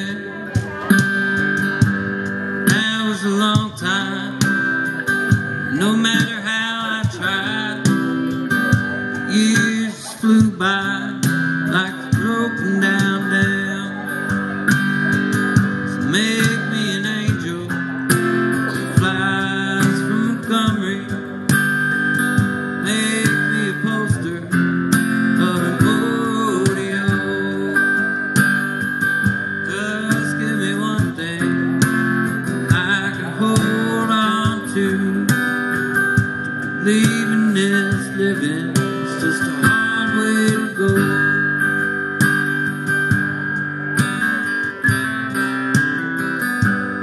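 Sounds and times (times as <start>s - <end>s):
strummed acoustic guitar: 0.0s - 47.0s
cajon played with brushes: 0.5s - 47.0s.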